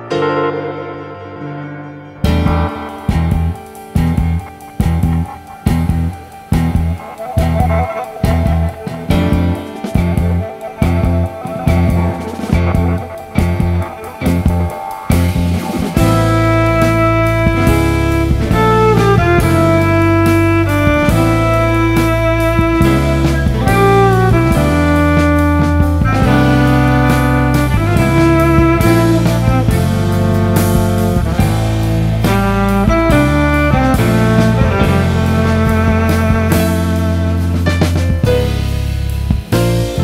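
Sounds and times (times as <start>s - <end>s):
instrumental jazz with keyboards: 0.0s - 40.0s.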